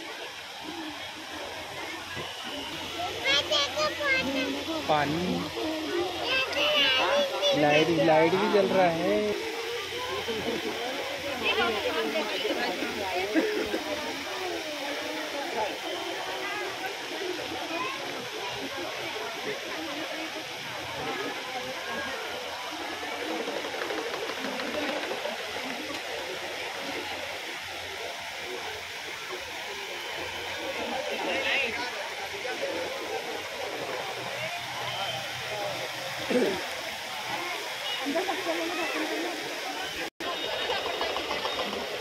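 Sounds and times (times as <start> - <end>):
crowd chatter: 0.0 - 42.0
fountain water splashing: 0.0 - 42.0.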